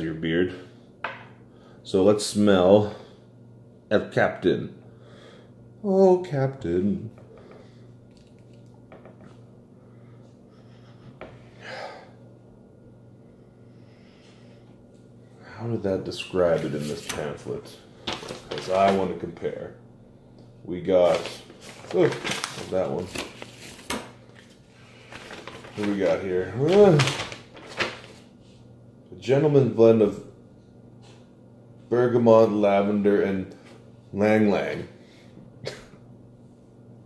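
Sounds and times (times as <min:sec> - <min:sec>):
paper rustling: 0:16.4 - 0:17.4, 0:18.0 - 0:19.2, 0:21.0 - 0:28.3
sharp paper crinkle: 0:18.0 - 0:19.1, 0:21.0 - 0:28.3.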